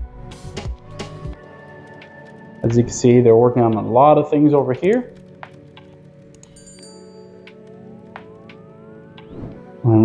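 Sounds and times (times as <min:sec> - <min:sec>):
soft background music: 0:00.0 - 0:10.0
rising tones: 0:06.7 - 0:09.8.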